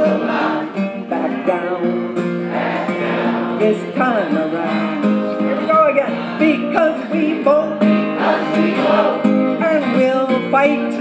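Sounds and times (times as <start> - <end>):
acoustic guitars strummed: 0.0 - 11.0
person singing: 0.0 - 11.0.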